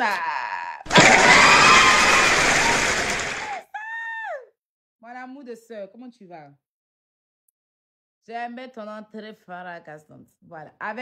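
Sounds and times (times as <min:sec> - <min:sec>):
crowd cheering: 0:00.9 - 0:03.6
pitched call sliding downward: 0:00.9 - 0:03.6.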